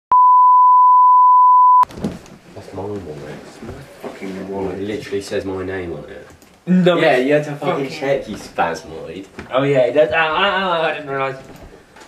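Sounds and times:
steady pure beep: 0:00.1 - 0:01.9.

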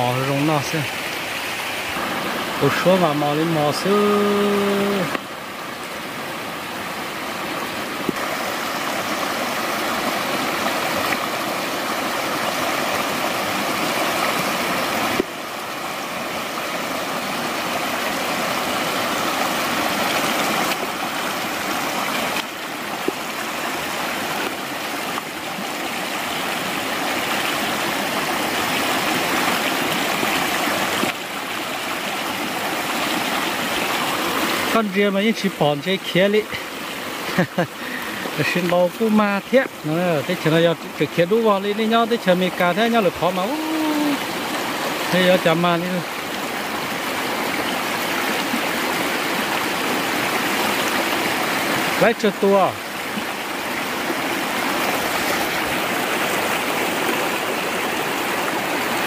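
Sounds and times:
stream rushing over stones: 0:00.0 - 0:59.0.

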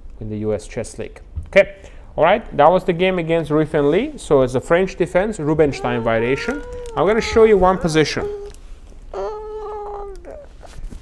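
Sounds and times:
child's high-pitched vocal sound: 0:05.5 - 0:10.8.

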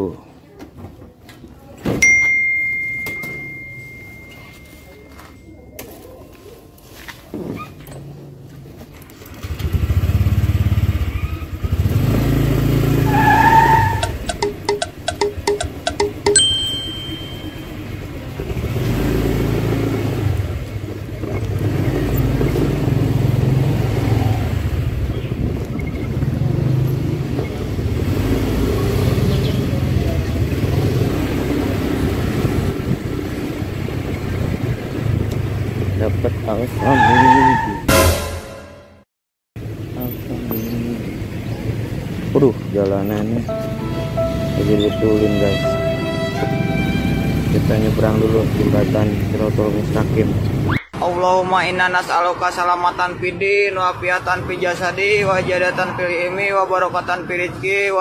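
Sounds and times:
short beep: 0:02.0 - 0:05.8, 0:14.3 - 0:18.1
scooter engine running: 0:09.2 - 0:13.0, 0:14.0 - 0:35.9
gusty wind noise: 0:32.0 - 0:36.0.

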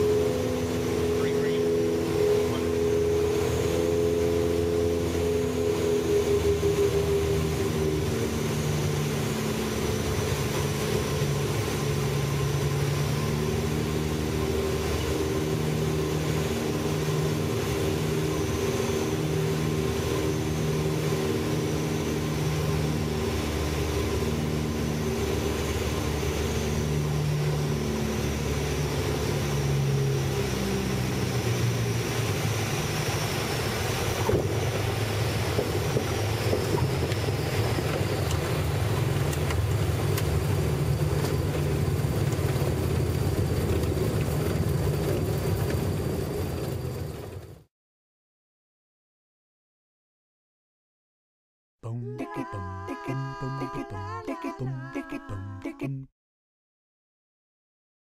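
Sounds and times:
piston aircraft engines droning: 0:00.0 - 0:47.6.

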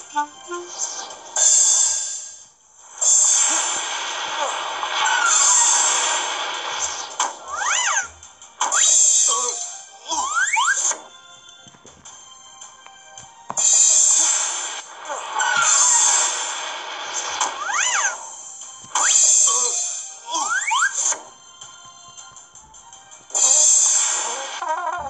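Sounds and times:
soft background music: 0:00.0 - 0:03.4, 0:06.9 - 0:25.0
cartoon wind and rain gusts: 0:02.8 - 0:08.1.

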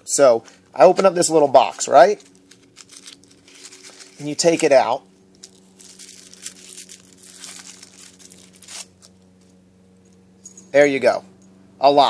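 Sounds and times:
wrapping crinkling: 0:02.1 - 0:09.5.

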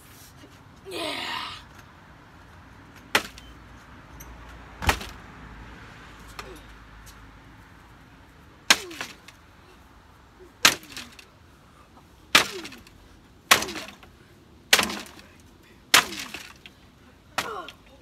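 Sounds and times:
hand tool striking wooden frame: 0:08.7 - 0:09.3, 0:10.6 - 0:11.2, 0:12.3 - 0:12.9, 0:13.5 - 0:14.0, 0:14.7 - 0:15.2, 0:15.9 - 0:16.6.

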